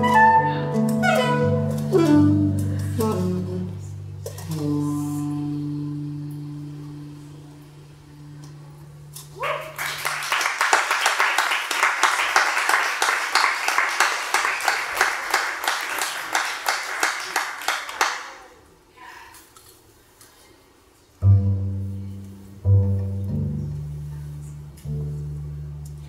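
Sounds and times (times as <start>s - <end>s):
jazz trio chord ringing: 0.0s - 9.1s, 21.2s - 26.0s
audience applause: 9.7s - 18.4s.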